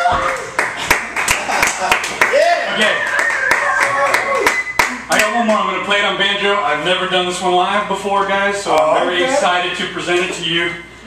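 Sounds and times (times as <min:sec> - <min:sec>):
audience clapping: 0:00.0 - 0:05.6
man talking: 0:05.1 - 0:10.9.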